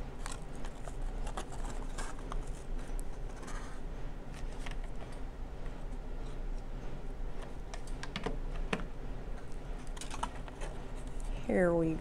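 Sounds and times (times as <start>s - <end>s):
card stock crinkling and tapping: 0.2s - 3.6s.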